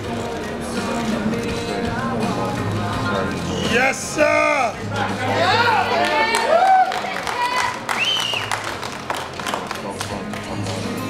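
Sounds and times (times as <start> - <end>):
audience voices: 0.0 - 11.0
music over sound system: 0.0 - 11.0.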